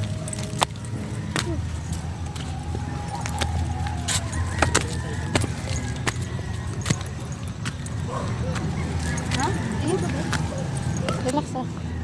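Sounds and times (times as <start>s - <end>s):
footsteps on rocky trail: 0.0s - 12.0s.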